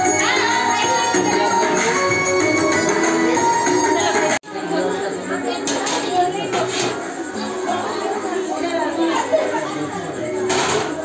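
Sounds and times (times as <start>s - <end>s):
music: 0.0s - 11.0s
people chattering in a large room: 0.0s - 11.0s.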